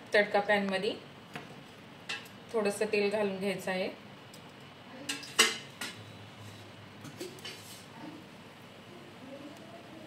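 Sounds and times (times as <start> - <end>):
metal kitchenware clattering: 5.1 - 6.0.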